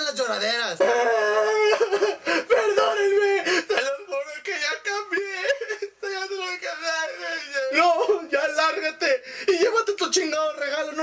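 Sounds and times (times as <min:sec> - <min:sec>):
man crying theatrically: 0:00.8 - 0:09.8.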